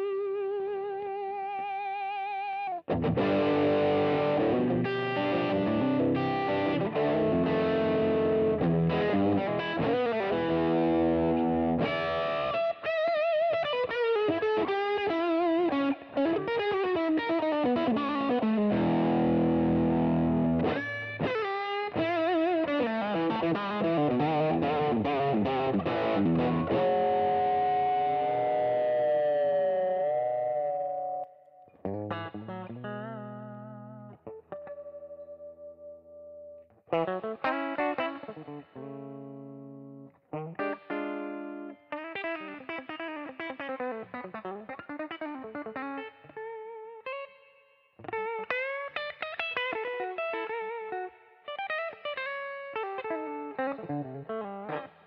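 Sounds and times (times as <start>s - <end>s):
electric guitar blues licks: 0.0s - 55.0s.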